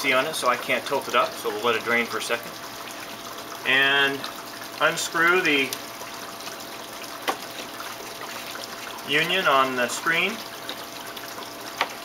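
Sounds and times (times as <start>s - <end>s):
water trickling: 0.0s - 12.0s.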